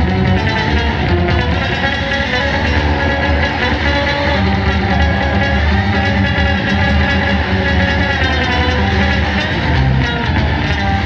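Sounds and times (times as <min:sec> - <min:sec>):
jazz-rock band playing: 0:00.0 - 0:11.0.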